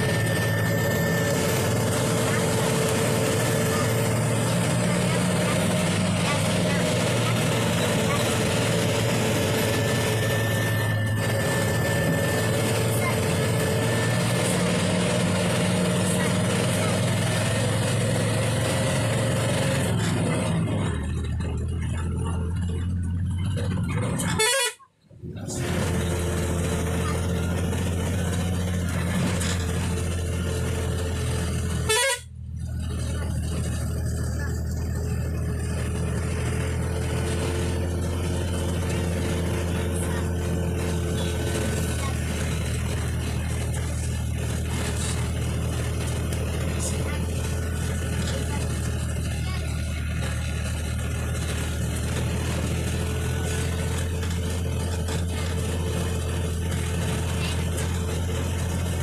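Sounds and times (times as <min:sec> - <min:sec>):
bus engine running: 0:00.0 - 0:59.0
road noise: 0:00.0 - 0:59.0.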